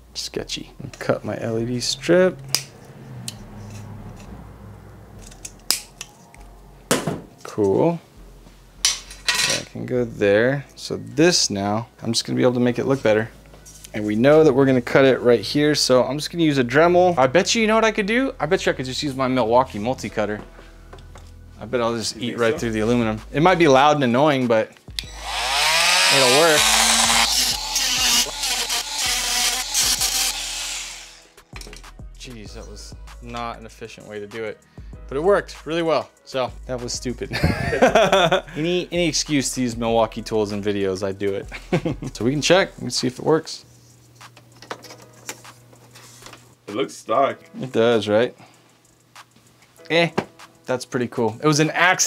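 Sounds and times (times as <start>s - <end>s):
oscillating tool cutting metal: 25.0s - 31.4s.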